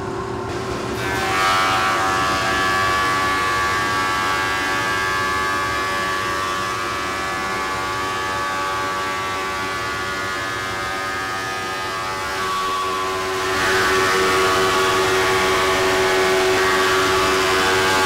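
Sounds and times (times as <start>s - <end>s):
planer machine whine: 0.0s - 18.0s.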